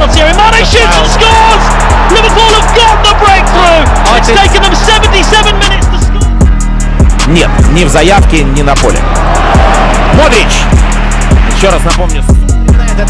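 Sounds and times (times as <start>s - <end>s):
music with heavy bass beat: 0.0s - 13.0s.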